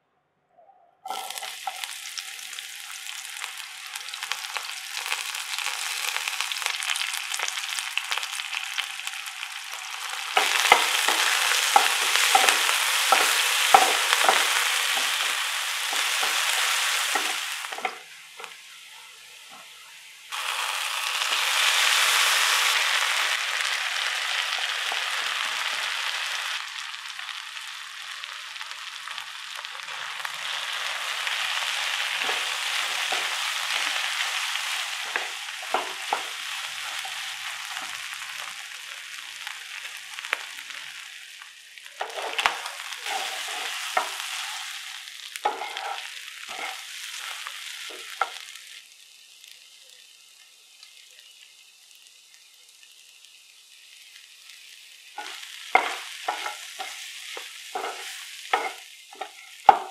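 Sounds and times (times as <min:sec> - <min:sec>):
onions sizzling in hot oil: 0:01.0 - 0:59.9
wooden spatula knocking and scraping: 0:10.4 - 0:18.0, 0:35.0 - 0:36.4, 0:55.2 - 0:59.9.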